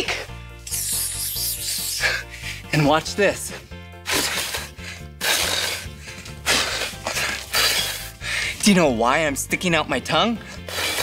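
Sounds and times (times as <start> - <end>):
background music: 0.0 - 11.0
man hissing like a snake: 0.6 - 2.7, 4.0 - 8.2, 10.6 - 11.0.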